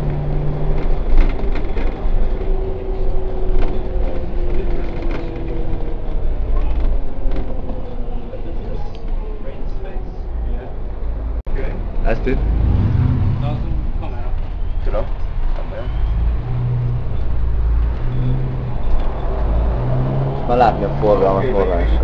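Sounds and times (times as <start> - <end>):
bus diesel engine drone: 0.0 - 22.0
passengers' voices: 1.0 - 11.2.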